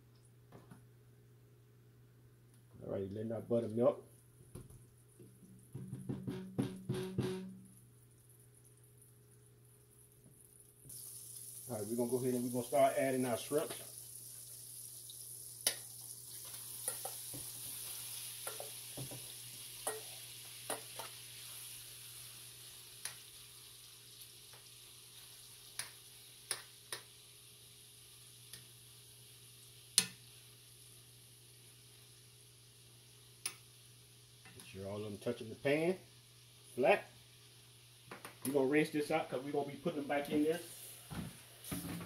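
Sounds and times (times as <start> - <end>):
shrimp sizzling in a frying pan: 10.6 - 34.5, 35.1 - 42.0
metal spoon clinking on pan: 16.8 - 17.2, 18.4 - 18.8, 19.8 - 21.1.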